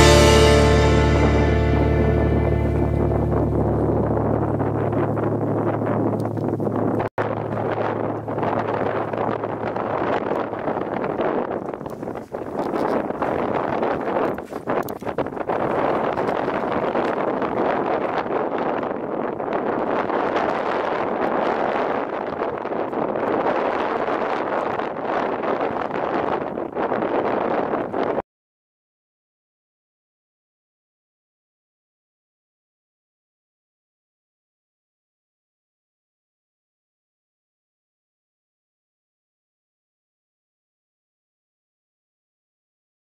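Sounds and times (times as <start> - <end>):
wind buffeting microphone: 0.0 - 28.2.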